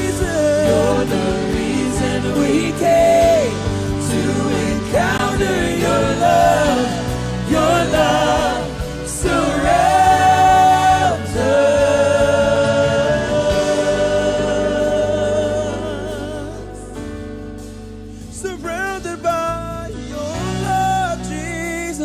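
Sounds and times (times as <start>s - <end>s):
people singing: 0.0s - 17.0s
electric and acoustic guitars: 0.0s - 22.0s.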